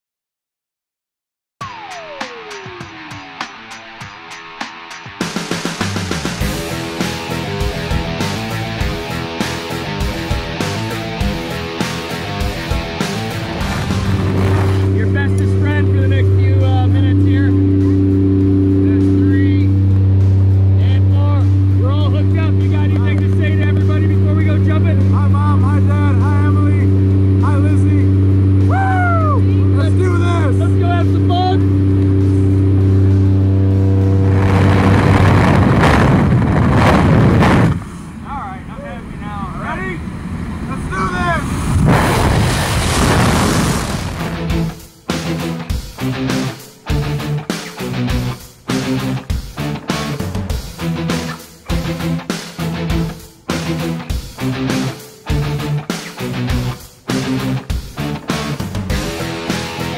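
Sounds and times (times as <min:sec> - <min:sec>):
loud rushing noise: 0:05.4 - 0:45.0
propeller engine droning: 0:05.4 - 0:49.2.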